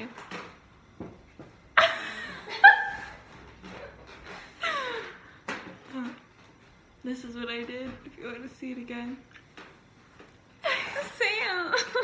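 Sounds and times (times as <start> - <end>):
young woman laughing loudly: 1.8 - 3.2, 10.6 - 12.0.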